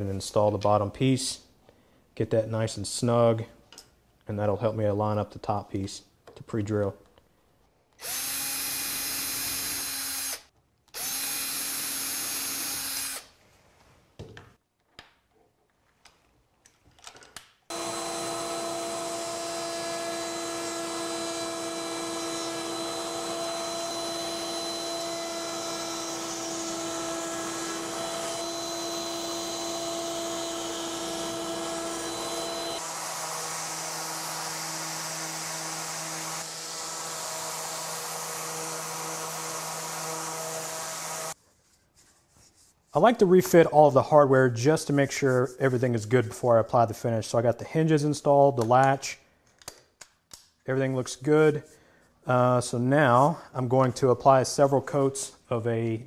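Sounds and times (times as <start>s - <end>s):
router running: 8.0s - 10.4s, 11.0s - 13.2s, 17.7s - 41.4s
cordless drill running: 8.0s - 13.3s, 17.7s - 41.4s
orbital sander running: 17.7s - 41.4s.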